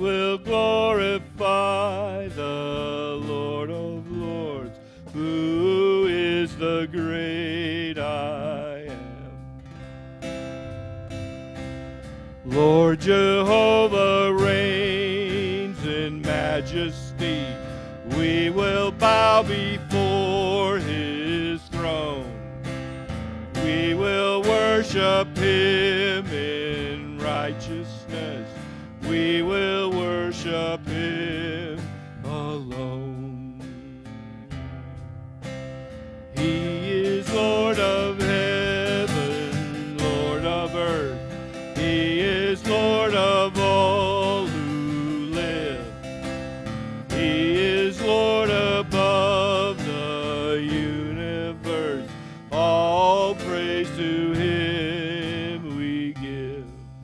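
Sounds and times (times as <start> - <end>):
man singing with vibrato: 0.0 - 9.6, 12.4 - 34.5, 36.3 - 57.0
bass guitar: 0.0 - 57.0
strummed acoustic guitar: 0.0 - 57.0.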